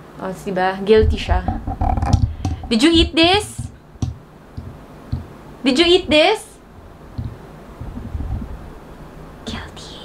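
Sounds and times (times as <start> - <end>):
low rumble: 0.9 - 4.8.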